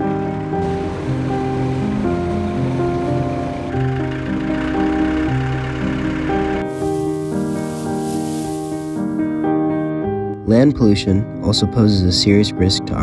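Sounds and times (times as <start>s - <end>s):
background music of held notes: 0.0s - 13.0s
steady rushing noise: 6.6s - 9.1s.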